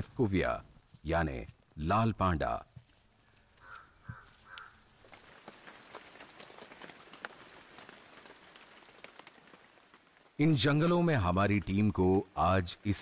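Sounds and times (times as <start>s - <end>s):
rain pattering: 0.0s - 13.0s.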